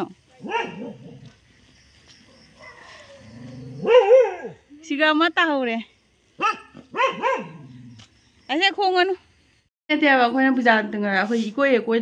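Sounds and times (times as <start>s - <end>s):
dog barking: 0.4s - 1.3s, 2.3s - 3.2s, 3.8s - 4.6s, 6.4s - 7.8s.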